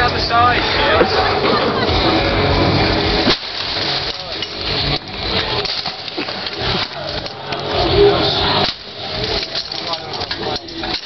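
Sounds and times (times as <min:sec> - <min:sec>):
tent frame clattering: 0:03.2 - 0:11.0.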